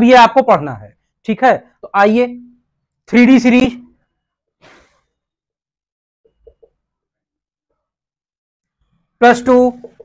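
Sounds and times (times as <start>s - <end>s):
short faint breath out: 4.6s - 5.2s.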